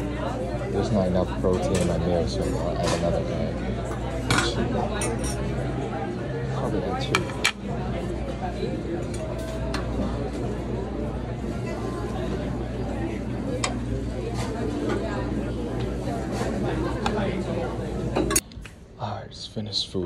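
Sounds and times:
many people talking: 0:00.0 - 0:20.0
clinking spoons and dishes: 0:01.5 - 0:05.5, 0:09.0 - 0:10.0.

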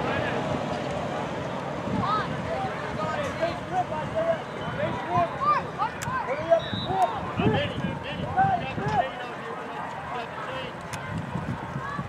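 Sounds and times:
many voices shouting: 0:09.8 - 0:12.0.

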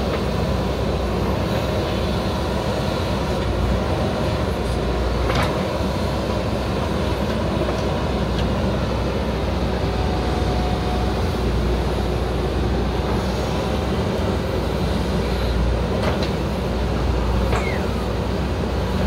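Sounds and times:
diesel engine running: 0:00.0 - 0:19.0
backhoe digging soil: 0:01.2 - 0:08.8, 0:14.8 - 0:18.8.

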